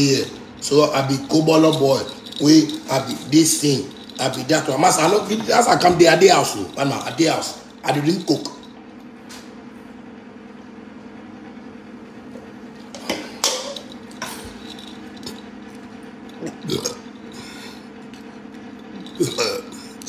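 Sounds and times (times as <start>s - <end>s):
low hum: 0.0s - 20.0s
man burping: 16.4s - 17.1s, 19.1s - 20.0s.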